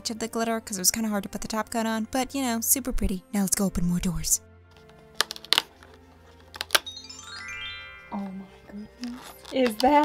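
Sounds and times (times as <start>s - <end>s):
soft background music: 0.0s - 10.0s
cardboard clicking and snapping: 4.8s - 6.9s.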